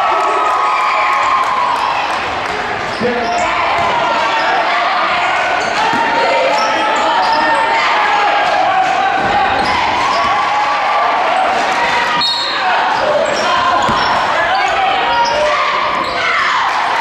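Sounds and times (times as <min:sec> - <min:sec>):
voices of players and spectators: 0:00.0 - 0:17.0
high squeak or whistle: 0:12.2 - 0:12.6.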